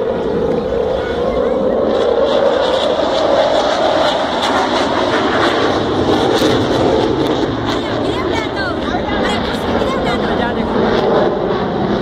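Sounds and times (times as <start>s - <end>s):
crowd voices: 0.0s - 12.0s
jet engine rumble: 0.0s - 12.0s.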